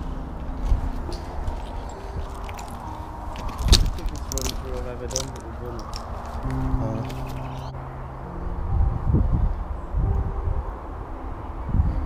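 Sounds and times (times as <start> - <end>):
footsteps crunching on loose stones: 0.4 - 7.7.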